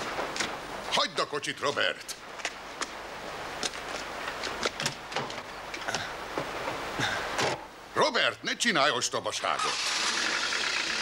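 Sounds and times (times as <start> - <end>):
steady background hiss: 0.0 - 11.0
footsteps walking: 3.6 - 5.4.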